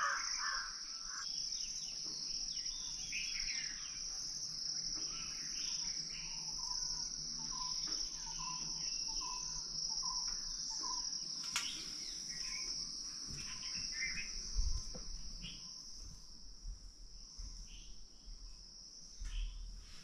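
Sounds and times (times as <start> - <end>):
birds chirping: 0.0 - 15.8
insect chorus drone: 0.0 - 20.0.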